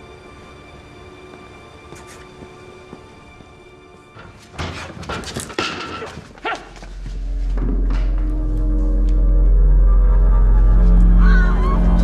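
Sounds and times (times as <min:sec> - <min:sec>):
low dramatic film score drone: 0:06.9 - 0:12.0.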